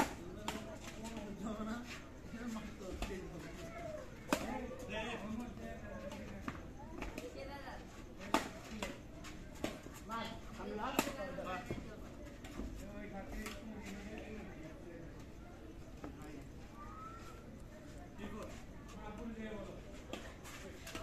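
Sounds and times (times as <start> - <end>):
rackets striking shuttlecock: 0.0 - 1.0, 4.2 - 4.8, 8.2 - 9.0, 10.8 - 11.3.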